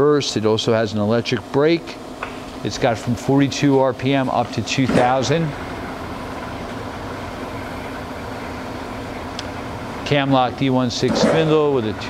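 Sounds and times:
lathe running whir: 0:00.0 - 0:12.0.

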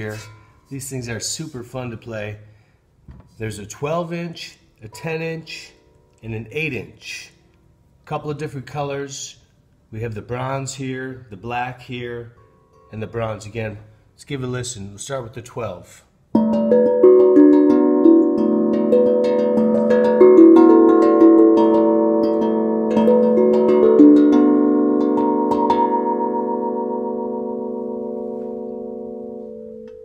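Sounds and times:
steel tongue drum melody: 0:16.4 - 0:30.0.

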